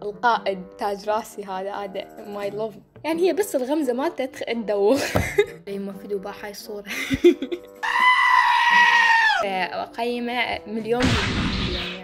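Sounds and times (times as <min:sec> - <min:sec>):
goat screaming: 0:07.8 - 0:09.5.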